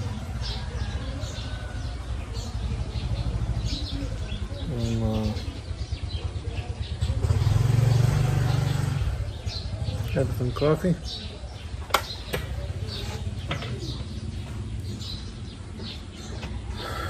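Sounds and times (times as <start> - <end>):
small birds chirping: 0.0 - 17.0
vehicle engine rumbling: 0.0 - 17.0.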